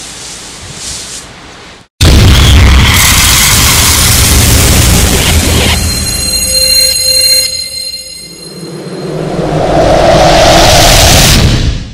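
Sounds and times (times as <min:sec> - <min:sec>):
loud hit with high ringing: 0:02.0 - 0:09.5
rushing roar: 0:08.3 - 0:11.9.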